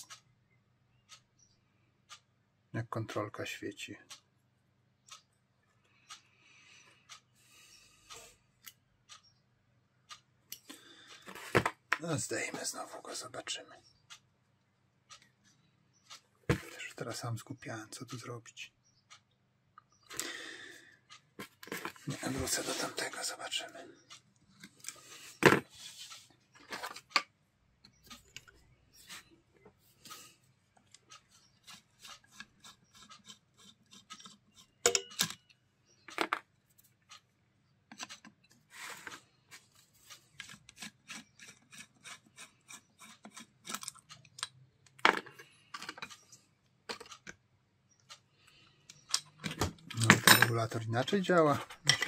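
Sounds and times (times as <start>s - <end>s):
hand tools clicking on metal: 30.9s - 35.5s, 40.3s - 46.2s.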